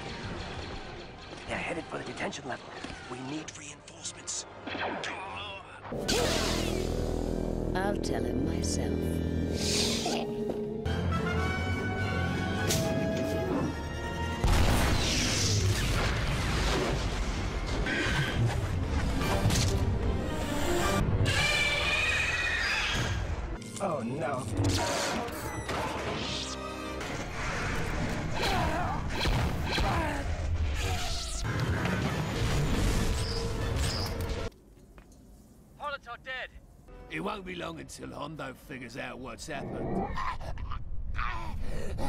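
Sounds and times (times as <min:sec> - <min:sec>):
orchestral score: 0:05.9 - 0:15.4
crashes booms and impacts: 0:14.4 - 0:17.8.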